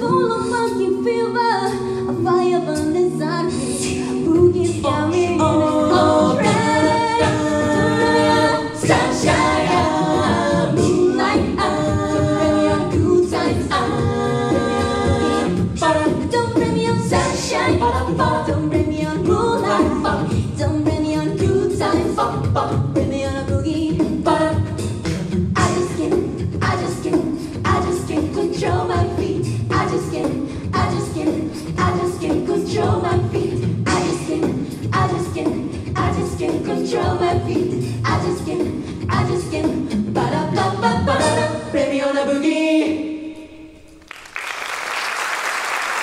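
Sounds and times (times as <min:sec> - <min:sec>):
a cappella group singing in harmony: 0:00.0 - 0:43.9
vocal percussion beat: 0:03.8 - 0:41.6.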